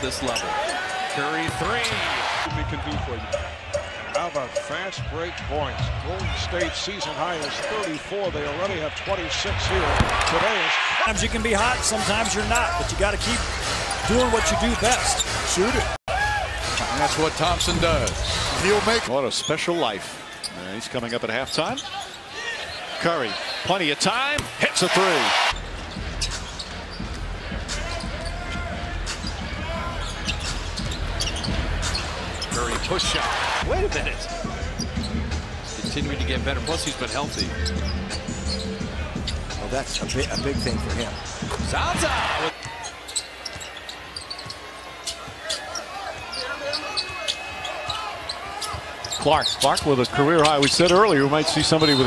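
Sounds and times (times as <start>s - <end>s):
crowd cheering: 0.0s - 7.2s, 8.4s - 19.1s, 21.9s - 25.6s, 27.5s - 34.8s, 41.7s - 52.0s.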